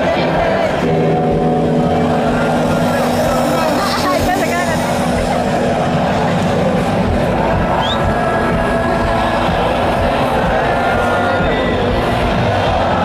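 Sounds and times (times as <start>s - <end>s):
crowd voices and shouts: 0.0s - 13.0s
loud droning guitar chord: 0.0s - 13.0s.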